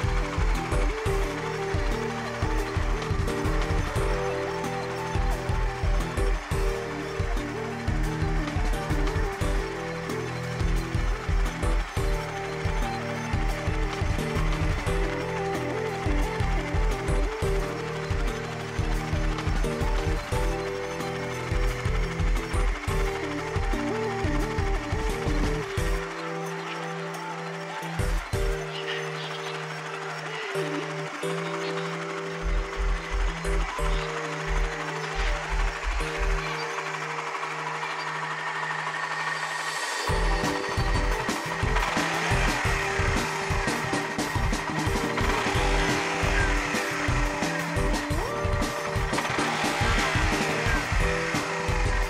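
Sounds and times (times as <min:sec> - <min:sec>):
motorcycle engine idling: 0:00.0 - 0:52.0.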